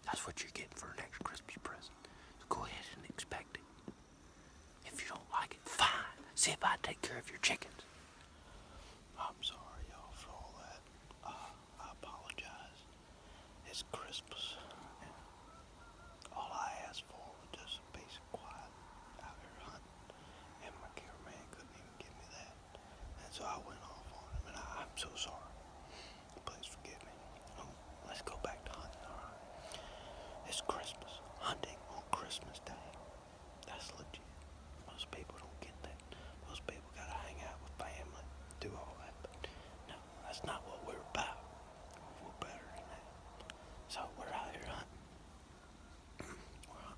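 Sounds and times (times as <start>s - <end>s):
man whispering: 0.0s - 15.4s, 16.2s - 45.1s, 46.2s - 46.9s.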